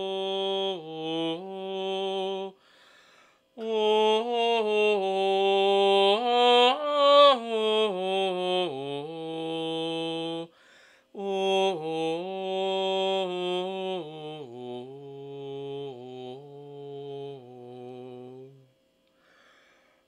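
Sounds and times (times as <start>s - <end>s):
man singing chant unaccompanied: 0.0s - 2.6s, 3.6s - 18.7s.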